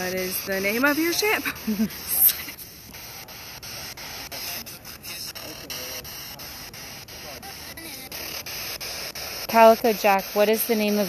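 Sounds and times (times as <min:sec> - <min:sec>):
radio static hiss: 0:00.0 - 0:11.0
rapid clicking: 0:00.0 - 0:11.0
snatches of broadcast voices: 0:00.0 - 0:11.0.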